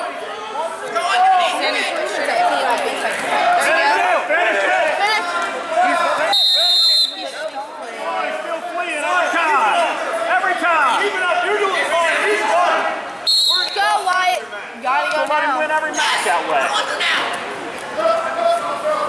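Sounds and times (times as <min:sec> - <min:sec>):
referee's whistle blast: 0:06.3 - 0:07.3, 0:13.2 - 0:13.9.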